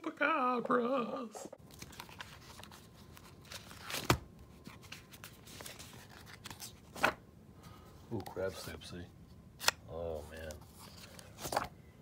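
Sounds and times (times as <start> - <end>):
paper pages rustling: 1.6 - 7.2, 9.6 - 11.7.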